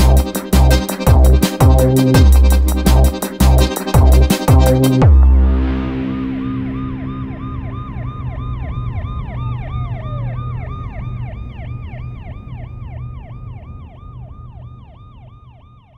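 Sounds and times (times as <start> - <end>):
low rumble: 0.0 - 15.2
siren yelping: 0.0 - 15.9
steady siren tone: 0.0 - 15.9.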